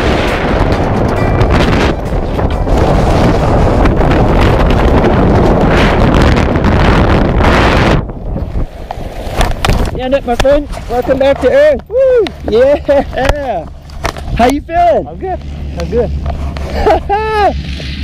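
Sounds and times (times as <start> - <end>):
wind rushing over microphone: 0.0 - 18.0.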